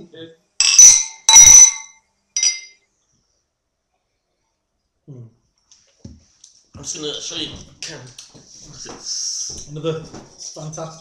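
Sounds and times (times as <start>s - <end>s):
drinking glass clinking: 0.6s - 2.8s.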